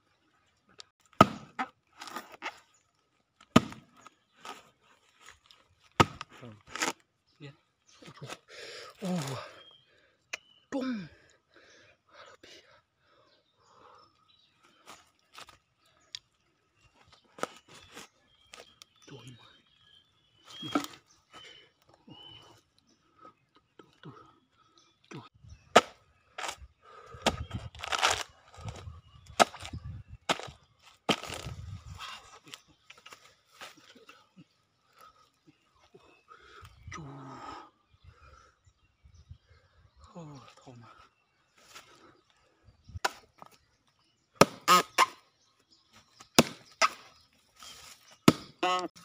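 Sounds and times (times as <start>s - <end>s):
axe chopping into trunk: 1.2s - 2.3s, 3.5s - 3.9s, 6.0s - 6.9s, 29.4s - 30.5s, 44.4s - 45.1s, 46.4s - 47.0s, 48.2s - 48.6s.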